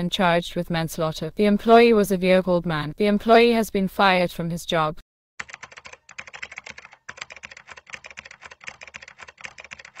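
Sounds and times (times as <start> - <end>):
keyboard typing: 5.4 - 10.0.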